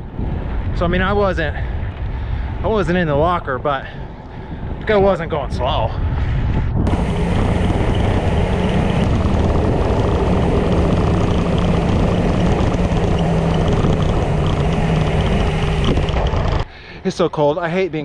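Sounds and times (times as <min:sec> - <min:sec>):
tyre and road rumble: 0:00.0 - 0:16.7
wind rush over microphone: 0:00.0 - 0:16.7.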